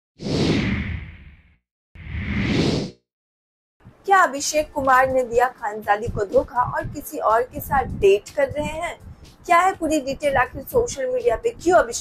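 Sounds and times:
whoosh sweep: 0.2s - 1.4s, 2.0s - 3.0s.

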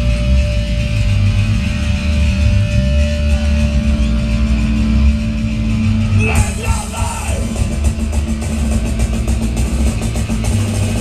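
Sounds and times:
distorted guitars droning chord: 0.0s - 11.0s.

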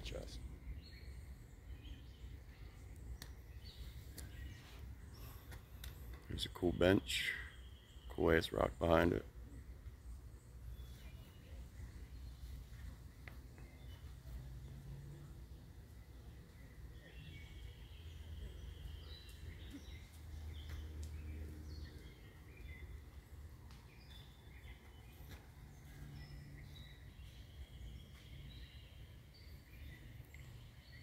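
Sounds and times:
birds chirping: 0.0s - 31.0s.

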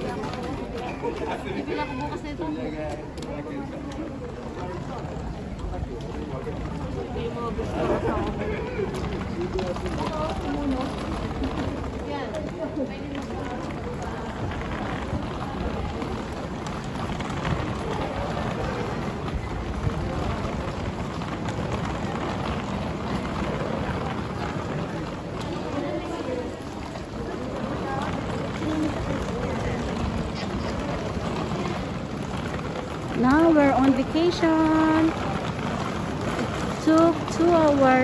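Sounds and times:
crowd and street noise: 0.0s - 38.0s
indistinct chatter: 0.0s - 38.0s
passers-by voices: 0.0s - 38.0s
wheeled suitcase rolling: 0.0s - 38.0s.

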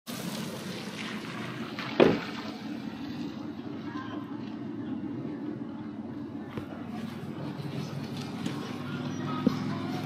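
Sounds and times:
low outdoor rumble: 0.1s - 10.0s.

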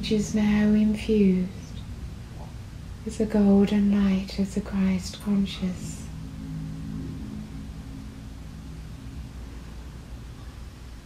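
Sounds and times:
steady hiss and low rumble: 0.0s - 11.0s
low held tone: 3.8s - 11.0s.

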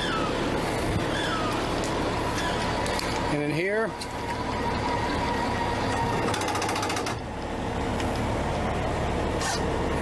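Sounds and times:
diesel generator running: 0.0s - 10.0s.

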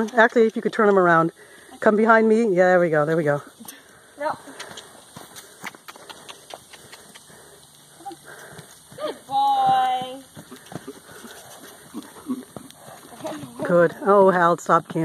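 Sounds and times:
horse hoofbeats on dirt: 0.0s - 1.1s, 4.3s - 15.0s.

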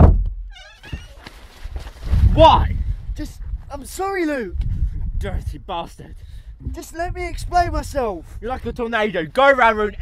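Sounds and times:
heavy thump: 0.0s - 1.1s.

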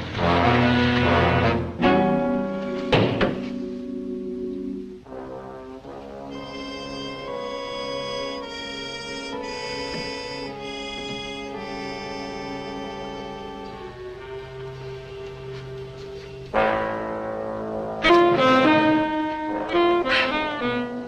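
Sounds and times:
brass holding long chords: 0.0s - 21.0s.

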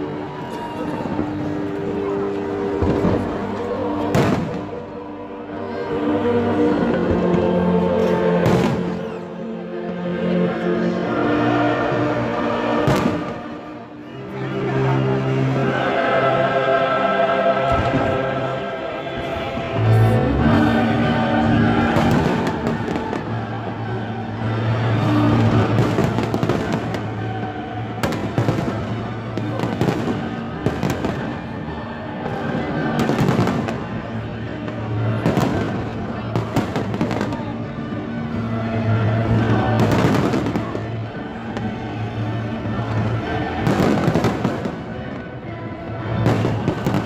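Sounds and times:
fireworks bangs: 4.0s - 4.8s, 8.4s - 9.1s, 12.8s - 13.6s, 17.7s - 18.2s, 21.8s - 23.5s, 24.8s - 31.6s, 39.4s - 41.8s, 42.9s - 45.2s, 46.2s - 47.0s.

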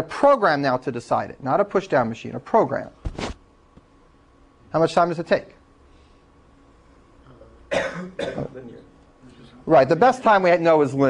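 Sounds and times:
man coughing: 7.7s - 8.7s.

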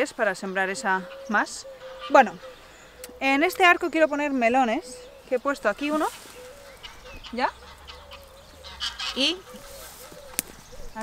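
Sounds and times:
bird honking calls: 0.0s - 11.0s.

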